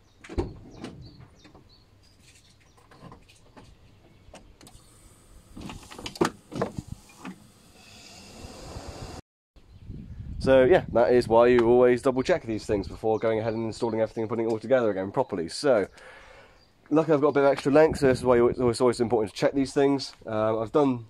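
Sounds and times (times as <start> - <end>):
wiper motor whir: 4.6 - 9.2.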